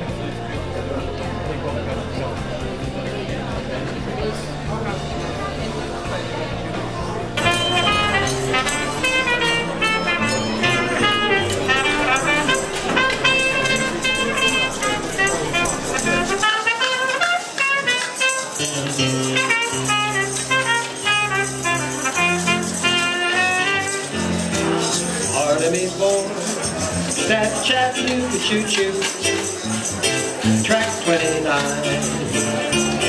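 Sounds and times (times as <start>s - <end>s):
swing music on electronic keyboard: 7.3s - 33.0s.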